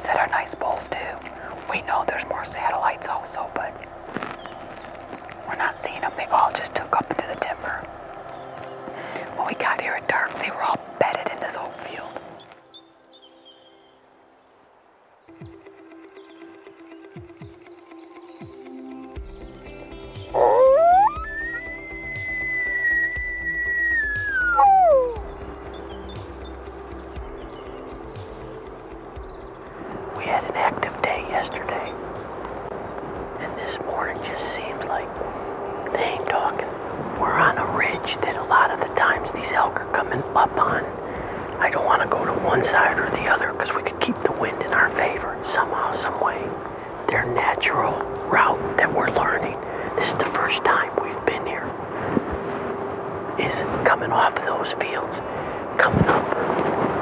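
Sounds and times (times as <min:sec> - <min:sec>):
background music: 0:00.0 - 0:57.0
elk bugling: 0:20.2 - 0:27.4, 0:29.7 - 0:51.9.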